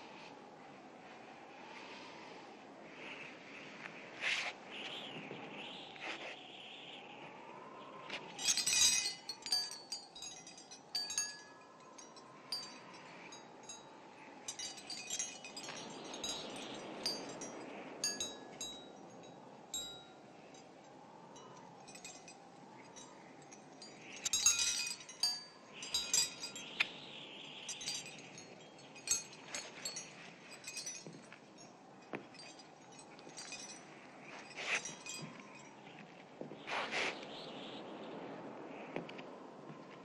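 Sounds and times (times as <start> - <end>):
glass prisms tinkling: 8.3 - 36.0.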